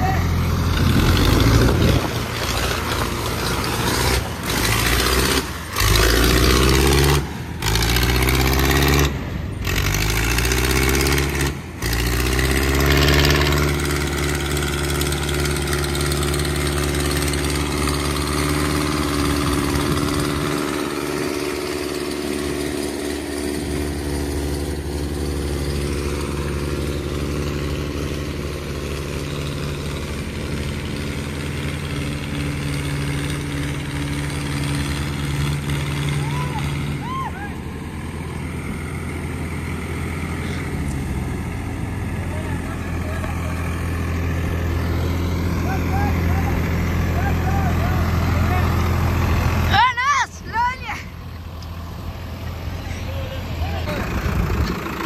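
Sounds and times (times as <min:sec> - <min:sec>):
tractor engine revving under load: 0:00.0 - 0:55.0.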